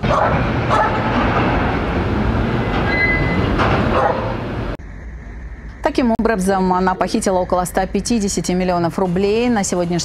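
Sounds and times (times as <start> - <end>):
railway station noise: 0.0 - 6.2.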